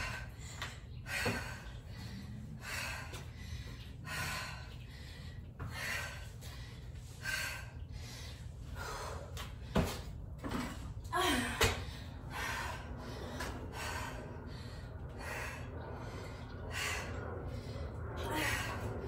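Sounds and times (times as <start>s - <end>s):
woman breathing hard: 0.0s - 10.2s, 11.1s - 19.0s.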